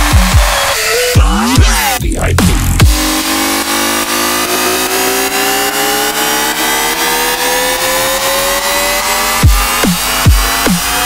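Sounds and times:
heavy kick drum: 0.0 - 3.4, 9.4 - 11.0
rising synth tones: 0.0 - 11.0.

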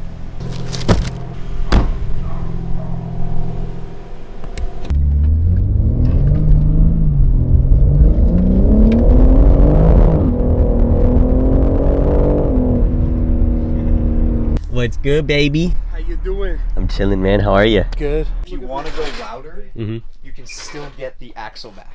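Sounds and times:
car engine accelerating and shifting: 0.0 - 14.6.

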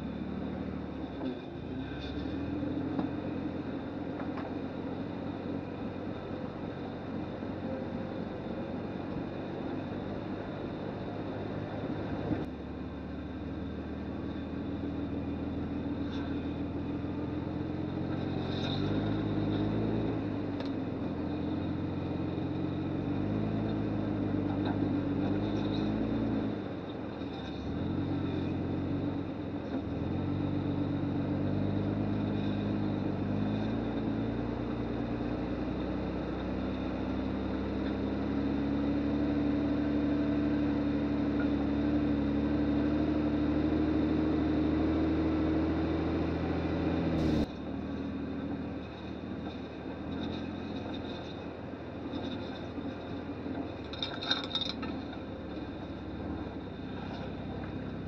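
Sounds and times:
engine running at low revs: 0.0 - 58.0.

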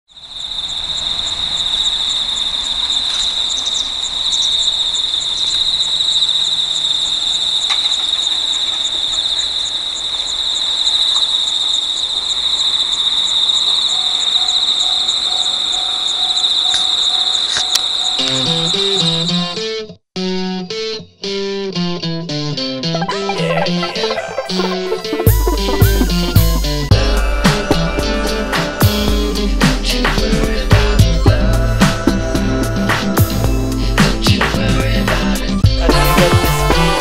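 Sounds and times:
insects trilling: 0.1 - 19.6, 23.1 - 26.9.

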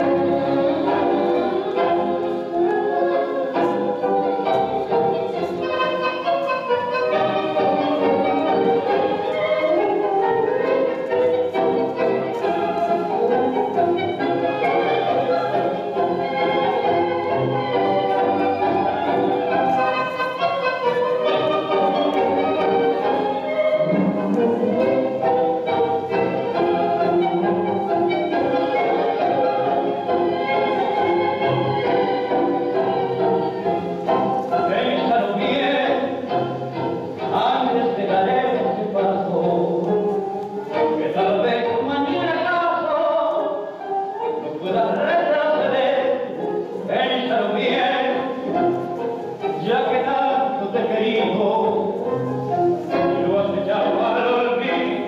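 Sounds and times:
tango music with strings: 0.0 - 55.0.

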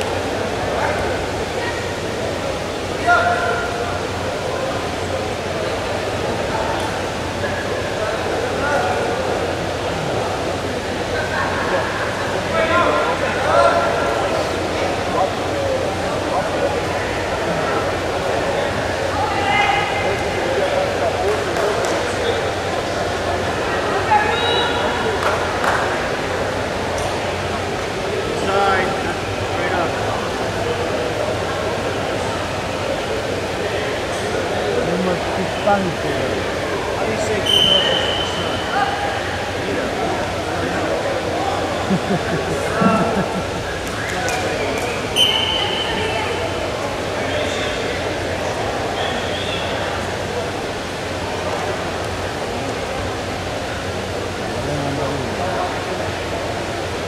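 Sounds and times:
crowd murmur: 0.0 - 57.0.

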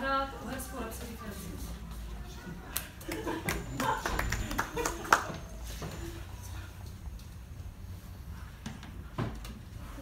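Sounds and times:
scattered handclaps: 2.7 - 5.4.

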